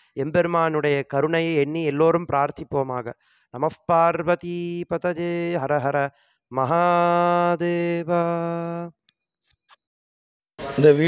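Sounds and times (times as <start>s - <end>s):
man chanting on one pitch: 0.2s - 8.9s.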